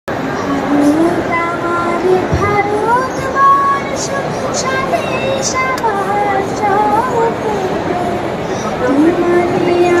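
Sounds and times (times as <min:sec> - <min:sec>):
hall noise: 0:00.1 - 0:10.0
girl singing into a microphone: 0:00.3 - 0:10.0.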